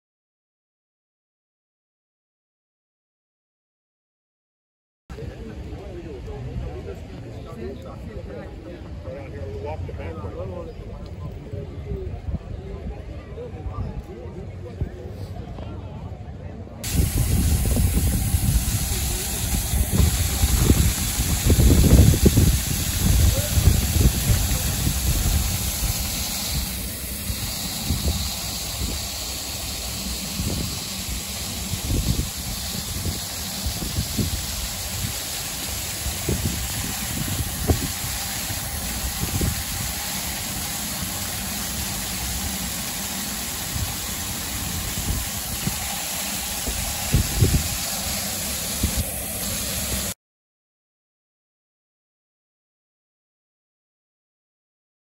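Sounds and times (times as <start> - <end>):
traffic hum: 16.8 - 50.0
fountain jet hissing and splashing: 16.8 - 50.2.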